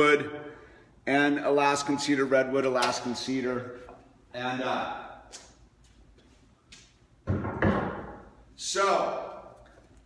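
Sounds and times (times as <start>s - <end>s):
wooden boards knocking: 7.3s - 8.2s.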